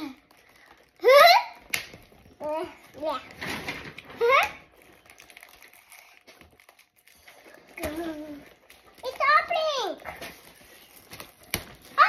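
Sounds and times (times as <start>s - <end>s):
cardboard boxes tapping and crinkling: 10.2s - 11.9s.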